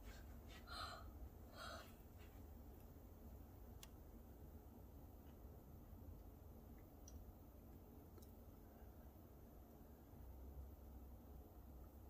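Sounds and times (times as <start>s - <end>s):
girl gasping: 0.0s - 2.0s.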